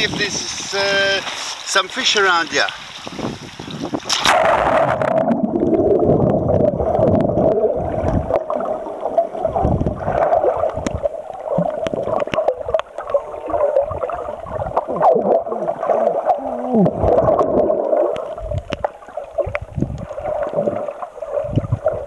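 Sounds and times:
water gurgling underwater: 3.2 - 22.0
small crackles: 4.1 - 22.0
steady underwater drone: 4.2 - 22.0.

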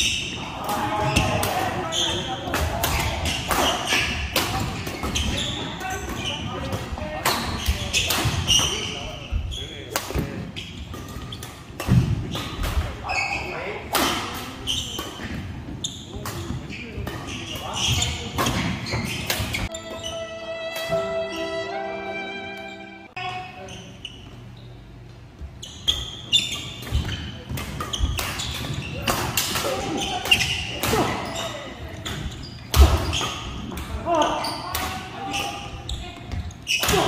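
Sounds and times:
players' voices: 0.0 - 11.0
rackets hitting shuttlecock: 9.9 - 12.9, 16.1 - 21.4, 25.9 - 31.2
music with held tones: 19.7 - 23.1.

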